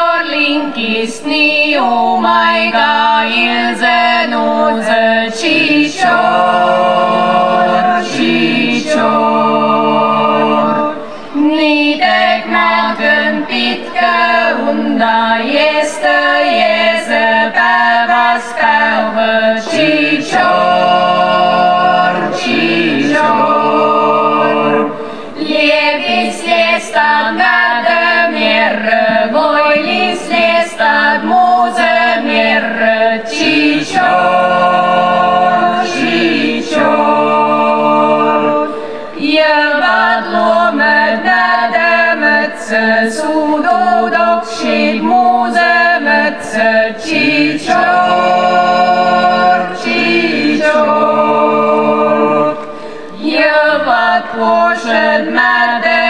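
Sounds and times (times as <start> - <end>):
choir singing in harmony: 0.0 - 56.0
short breaths: 11.0 - 11.4, 25.0 - 25.4, 38.7 - 39.2, 52.7 - 53.2.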